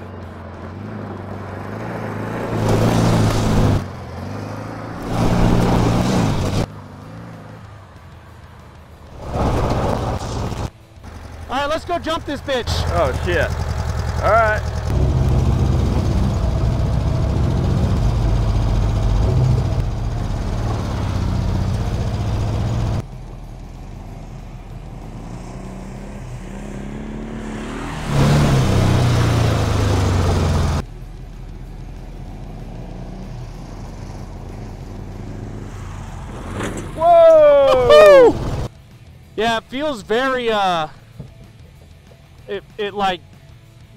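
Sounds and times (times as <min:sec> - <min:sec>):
dune buggy engine revving: 0:00.0 - 0:07.8, 0:09.1 - 0:38.7
person calling out: 0:37.0 - 0:38.4.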